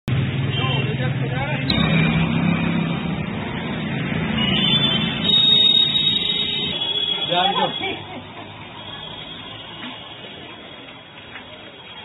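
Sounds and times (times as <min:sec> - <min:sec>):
road noise: 0:00.1 - 0:12.0.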